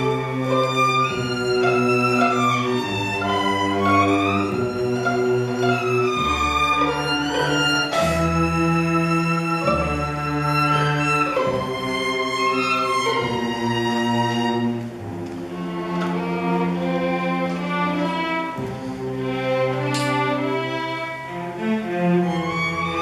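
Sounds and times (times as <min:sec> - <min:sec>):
string orchestra playing: 0:00.0 - 0:23.0.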